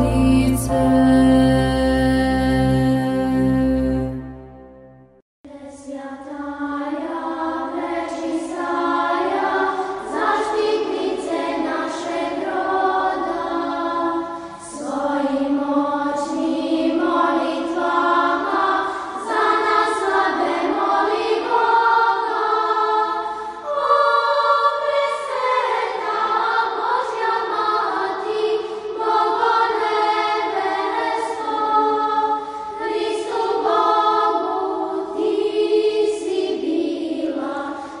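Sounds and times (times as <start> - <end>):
choir singing unaccompanied chant: 0.0 - 4.5, 5.6 - 38.0.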